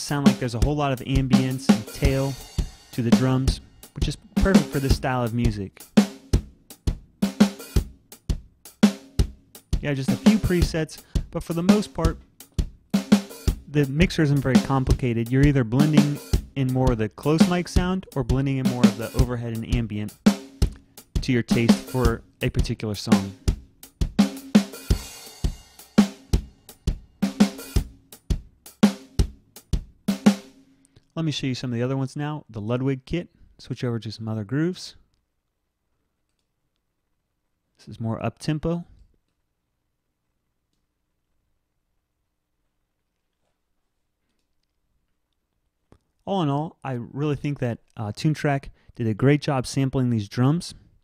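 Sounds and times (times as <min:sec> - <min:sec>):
dry drum kit groove: 0:00.0 - 0:31.4.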